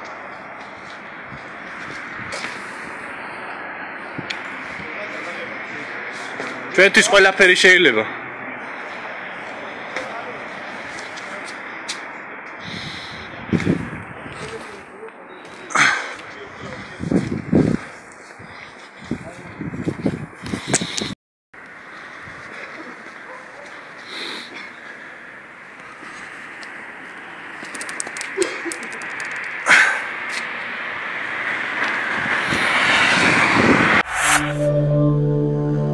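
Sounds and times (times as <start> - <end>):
city street noise: 0.0 - 35.9
small clicks: 27.6 - 29.6
synthesized music jingle: 34.0 - 35.9.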